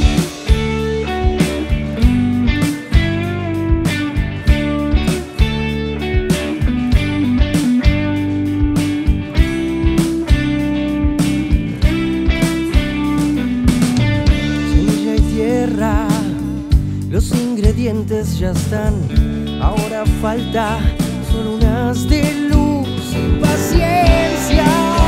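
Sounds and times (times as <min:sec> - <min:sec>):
drum hits: 0:00.0 - 0:15.4, 0:23.2 - 0:25.0
rock band playing instrumental: 0:00.0 - 0:17.6, 0:19.0 - 0:25.0.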